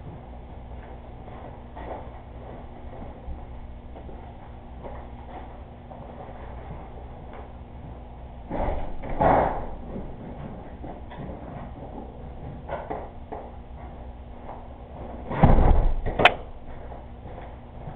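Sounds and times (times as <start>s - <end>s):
door thumping with rattle: 15.2s - 16.4s.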